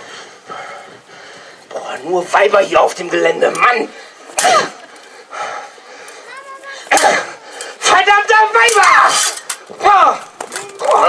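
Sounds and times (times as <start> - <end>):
soft breathy sound: 0.0 - 1.7
person exclaiming loudly: 7.9 - 11.0.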